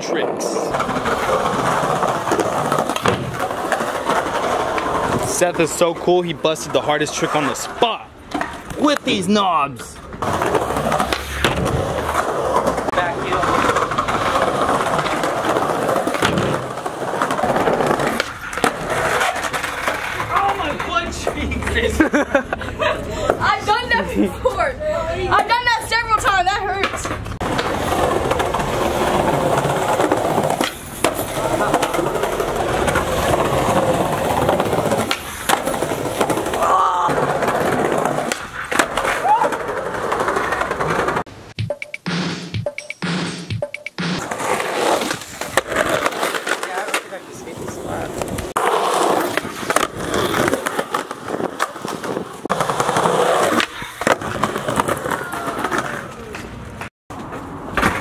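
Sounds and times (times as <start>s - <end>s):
skateboard wheels rolling on concrete: 0.0s - 41.6s, 44.2s - 58.0s
skateboard clacks and landings: 0.6s - 5.2s, 10.0s - 21.5s, 26.8s - 41.2s, 48.2s - 58.0s.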